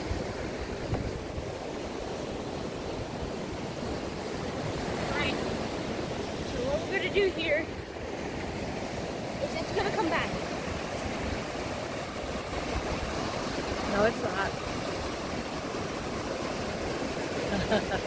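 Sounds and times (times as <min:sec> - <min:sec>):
ocean surf washing: 0:00.0 - 0:18.0.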